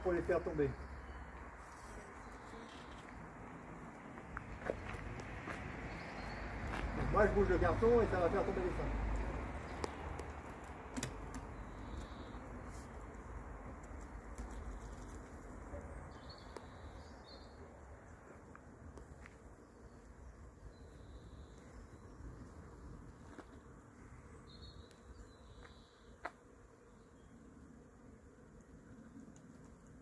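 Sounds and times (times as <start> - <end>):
honeybee swarm buzzing: 22.1 - 30.0.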